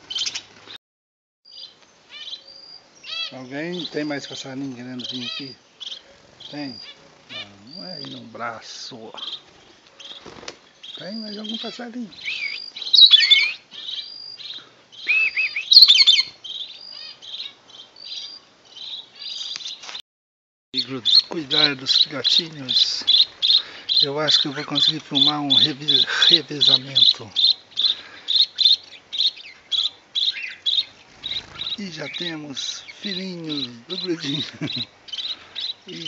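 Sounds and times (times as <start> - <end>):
birds chirping and whistling: 0.0 - 0.5, 1.5 - 19.8, 20.8 - 36.0
bursts of bird twittering: 1.5 - 19.8, 20.8 - 36.0
cricket chirping: 20.8 - 36.0.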